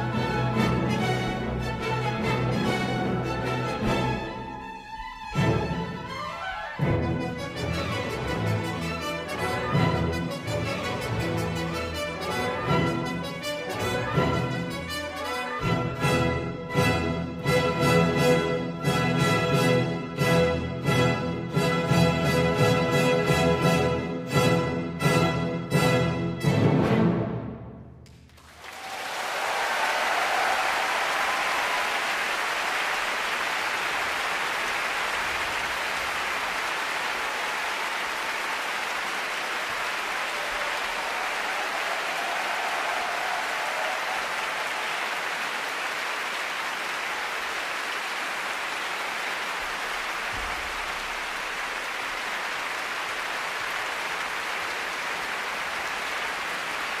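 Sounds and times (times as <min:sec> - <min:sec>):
audience applauding: 0:00.0 - 0:19.6, 0:28.0 - 0:57.0.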